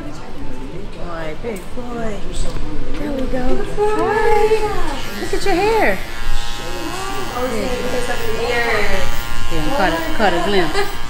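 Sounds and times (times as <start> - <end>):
people talking: 0.0 - 11.0
electric hair clippers buzzing: 4.1 - 11.0.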